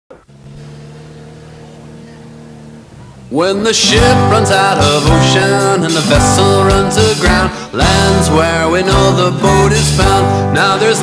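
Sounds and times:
car engine hum from cabin: 0.1 - 3.9.

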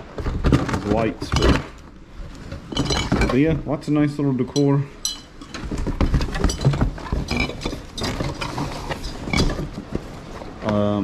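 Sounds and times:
cardboard rustling and scraping: 0.0 - 3.8, 5.4 - 11.0
glass and plastic clinking: 2.6 - 3.6, 4.5 - 10.0.

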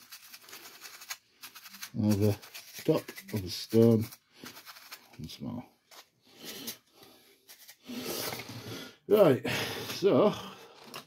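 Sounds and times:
paintbrush rubbing on stone: 0.0 - 5.1.

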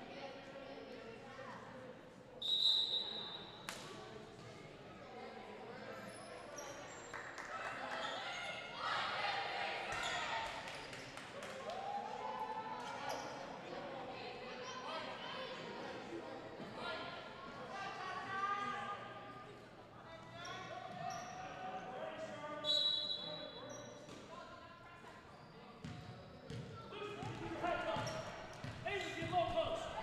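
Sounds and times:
young players' voices and chatter: 0.0 - 30.0
referee's whistle blowing: 2.4 - 3.4, 22.6 - 23.5.

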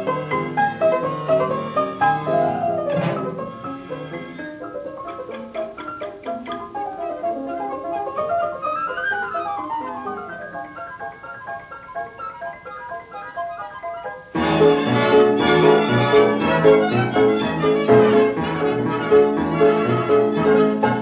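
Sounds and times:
piano and orchestra playing fast: 0.0 - 21.0.

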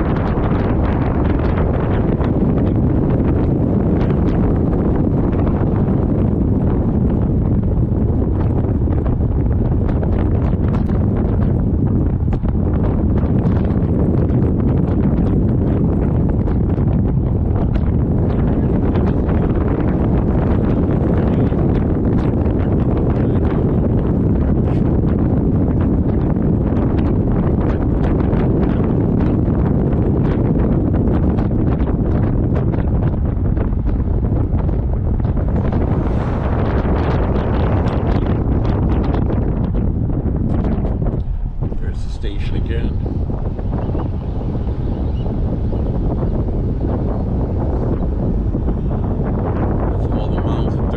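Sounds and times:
wind buffeting microphone: 0.0 - 50.9.

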